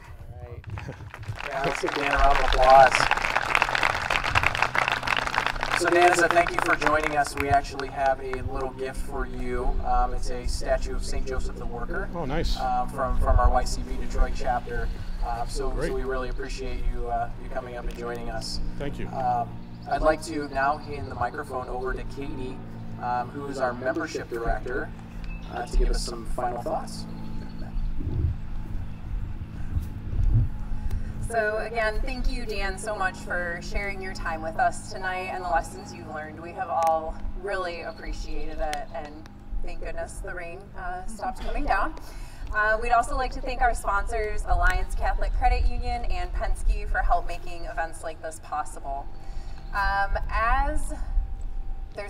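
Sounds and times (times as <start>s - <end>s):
low rumbling on microphone: 0.0s - 19.9s, 20.8s - 33.4s
steady electrical hum: 0.0s - 52.0s
audience applauding: 0.6s - 8.7s.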